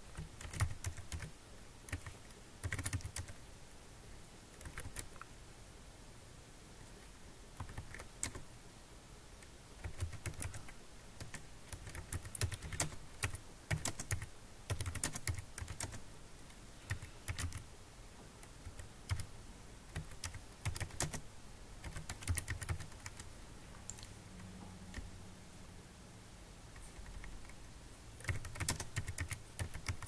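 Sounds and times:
computer keyboard typing: 0:00.1 - 0:01.3, 0:01.9 - 0:03.4, 0:04.6 - 0:05.2, 0:07.6 - 0:08.4, 0:09.8 - 0:16.0, 0:16.9 - 0:17.6, 0:18.4 - 0:19.3, 0:19.9 - 0:21.2, 0:21.8 - 0:23.3, 0:28.2 - 0:30.0.

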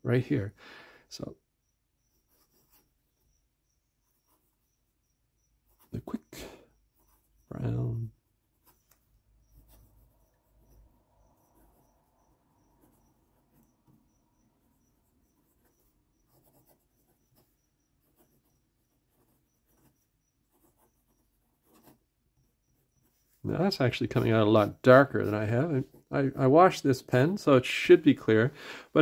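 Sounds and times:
pen nib scratching paper: 0:02.0 - 0:07.5, 0:08.4 - 0:26.1.

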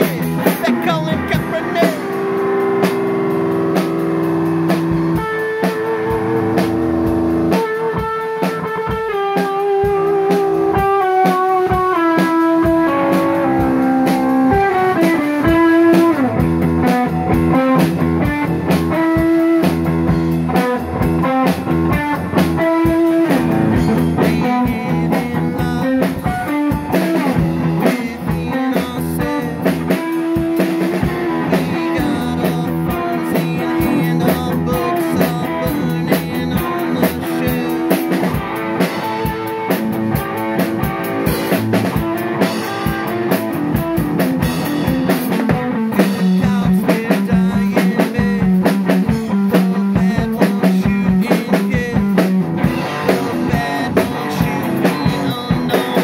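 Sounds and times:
drum kit beat: 0:00.0 - 0:56.0
electric guitar lead line: 0:00.0 - 0:56.0.

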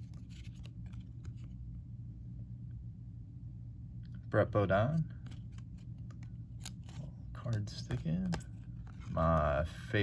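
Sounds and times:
trading cards being shuffled: 0:00.0 - 0:01.7, 0:05.0 - 0:09.9.

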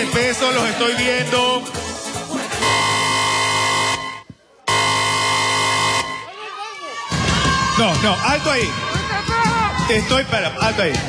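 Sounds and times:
horn blasts: 0:02.6 - 0:06.3.

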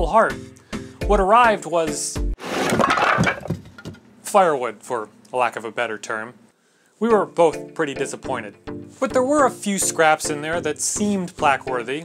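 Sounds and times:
background music: 0:00.0 - 0:02.4, 0:07.0 - 0:12.0
wood pieces clattering and cracking: 0:02.5 - 0:04.0.

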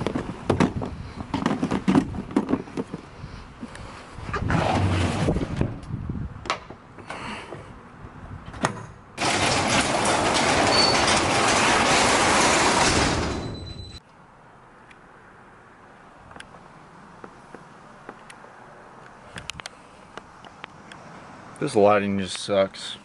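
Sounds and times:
drawer sliding shut: 0:08.6 - 0:13.6.

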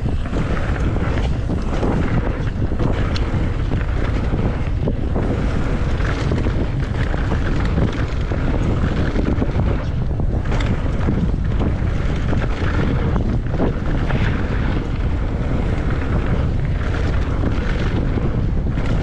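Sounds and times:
bike knocks and rattles: 0:00.0 - 0:19.0
tyres rolling on gravel: 0:00.0 - 0:19.0
wind buffeting microphone: 0:00.0 - 0:19.0.

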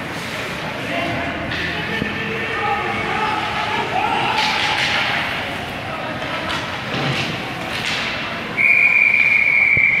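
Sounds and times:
ice rink noise: 0:00.0 - 0:10.0
high whistle blast: 0:08.6 - 0:10.0.

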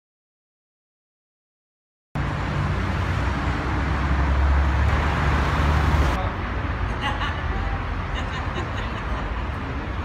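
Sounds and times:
road noise: 0:02.2 - 0:10.0
street ambience: 0:02.2 - 0:10.0.

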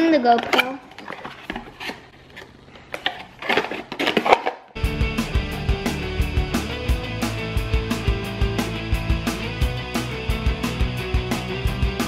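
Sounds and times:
cardboard box and packaging rustling: 0:00.4 - 0:04.7
background music: 0:04.8 - 0:12.0.

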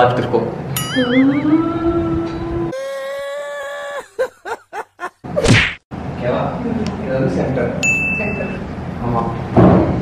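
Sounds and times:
held electronic tone: 0:00.8 - 0:02.6.

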